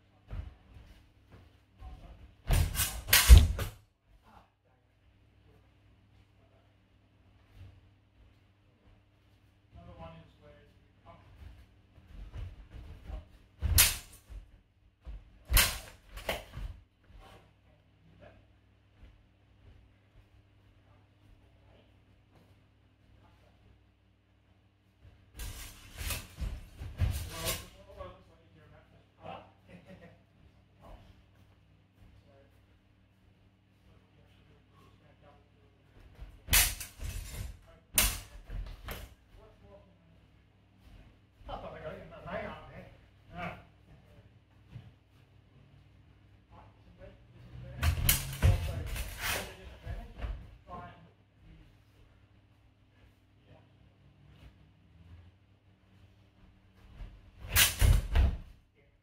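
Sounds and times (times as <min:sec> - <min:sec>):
practice swords clashing: 0:02.5 - 0:03.7, 0:13.6 - 0:14.4, 0:15.5 - 0:16.6, 0:25.4 - 0:27.8, 0:36.4 - 0:39.0, 0:47.8 - 0:49.6, 0:57.4 - 0:58.4
fencers scuffing and rustling: 0:25.0 - 0:27.8.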